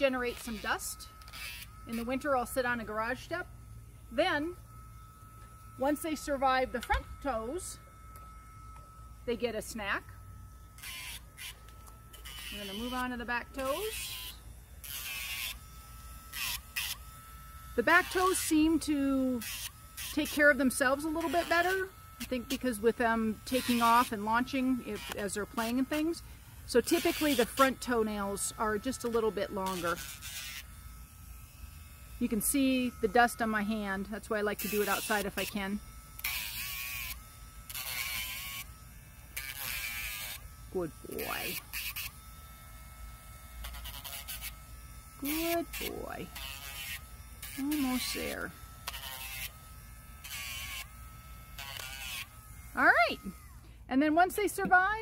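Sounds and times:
rotary tool whine: 0.0s - 55.0s
raspy grinding on nail: 39.3s - 40.5s, 43.5s - 44.6s, 45.2s - 50.9s, 51.5s - 52.4s.

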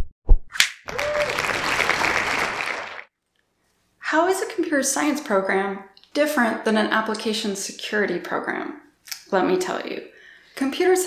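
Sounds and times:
applause: 0.9s - 3.1s.

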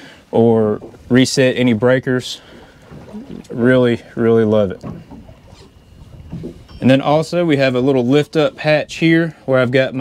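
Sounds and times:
faint thin steady tone: 2.5s - 8.5s.

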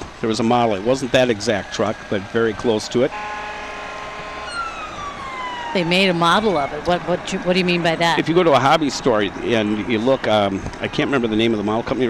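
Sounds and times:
fire engine siren: 0.8s - 10.5s.

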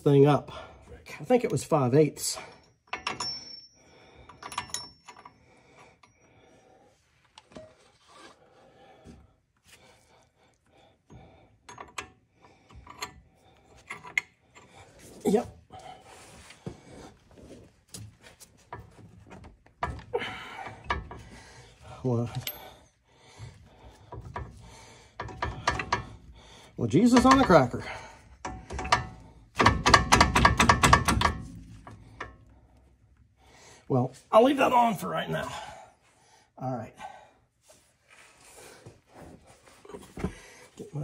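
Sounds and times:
wrench clicking on metal: 25.2s - 26.3s, 27.1s - 32.4s.

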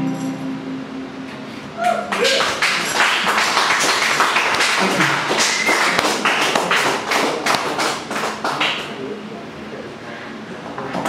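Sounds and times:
audience applauding: 1.8s - 9.2s.

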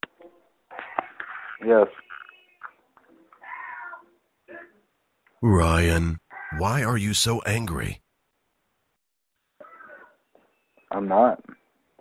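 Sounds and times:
faint background sounds over telephone: 0.2s - 8.0s.

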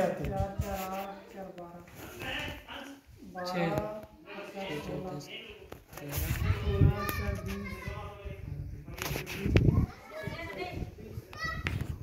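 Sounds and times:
people talking and calling out: 0.0s - 12.0s.

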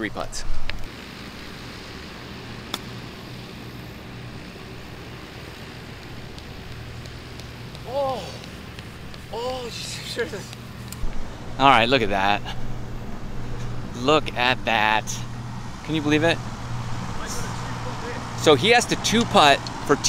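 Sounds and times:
low background hum: 0.0s - 20.0s
golf club striking ball: 2.7s - 2.9s
man exclaiming: 7.8s - 8.5s, 9.3s - 10.5s.

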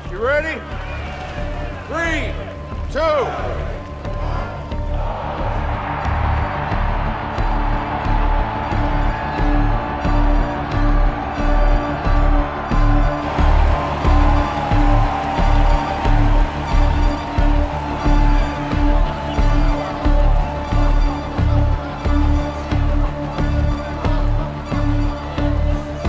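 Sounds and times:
background music with low pulse: 0.0s - 26.0s.

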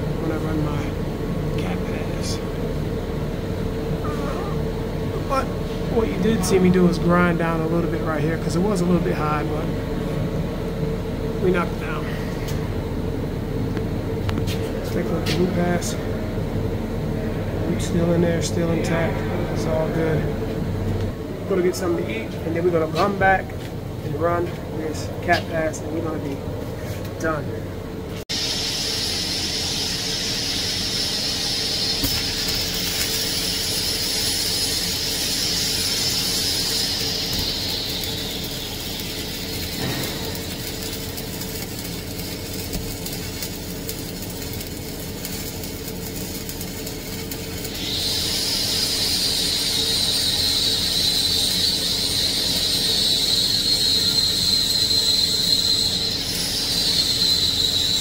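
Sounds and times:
high-pitched whine: 0.0s - 26.4s, 27.2s - 58.0s
welding arc crackling hiss: 28.2s - 58.0s.

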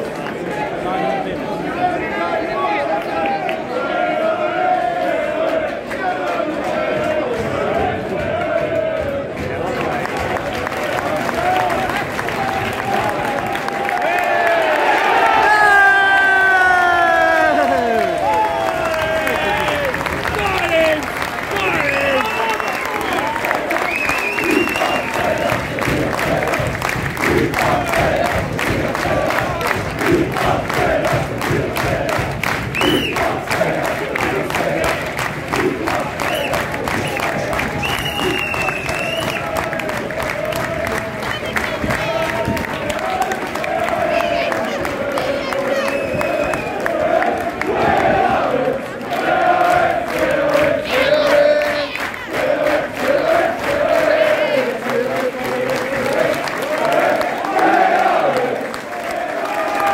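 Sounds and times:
crowd chanting: 0.0s - 59.9s
crowd clapping: 0.0s - 59.9s.

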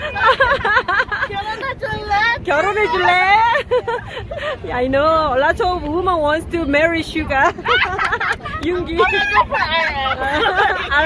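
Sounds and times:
low outdoor rumble: 0.0s - 11.0s
women talking over each other: 0.0s - 11.0s.

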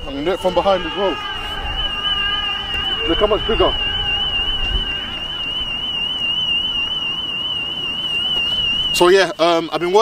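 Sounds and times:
warbling alarm tone: 0.0s - 9.7s.

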